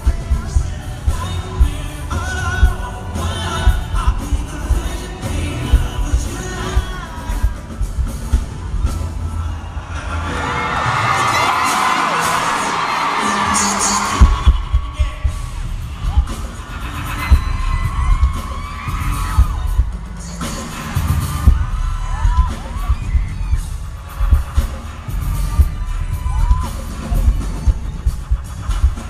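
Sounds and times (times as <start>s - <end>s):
heavy repeating bass beat: 0.0s - 9.7s, 13.8s - 29.0s
crowd screaming and cheering: 0.0s - 29.0s.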